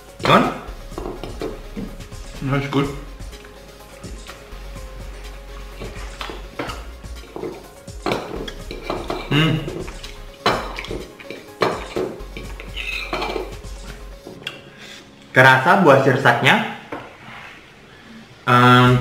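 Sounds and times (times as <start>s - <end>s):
cutlery clinking on ceramic plate: 5.8s - 13.6s.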